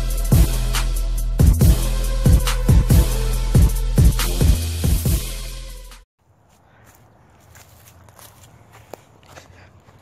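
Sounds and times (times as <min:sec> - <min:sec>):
footsteps on grass and dirt: 0:06.2 - 0:10.0.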